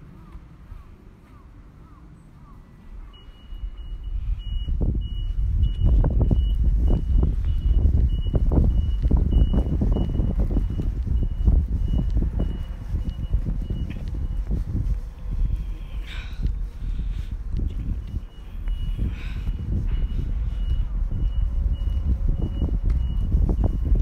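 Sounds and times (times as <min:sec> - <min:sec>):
truck engine rumble: 0:00.0 - 0:24.0
truck reversing alarm beeping: 0:02.4 - 0:24.0.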